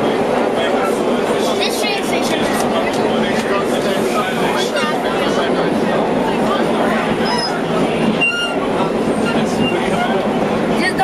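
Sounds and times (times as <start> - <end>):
train wheels rumbling on rail: 0.0 - 11.0
high wheel squeal: 7.2 - 10.2.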